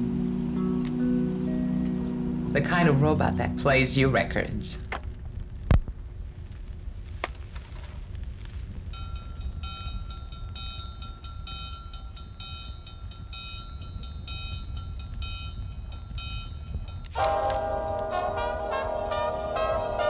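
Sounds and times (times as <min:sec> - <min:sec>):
low rumble: 0:00.0 - 0:20.0
brass-led jazz music: 0:17.2 - 0:20.0
steady high tone: 0:17.2 - 0:20.0.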